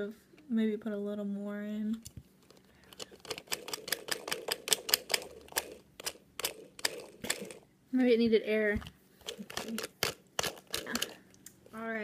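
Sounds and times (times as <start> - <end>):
plastic toy clicking and rattling: 2.4 - 7.6, 9.2 - 11.3.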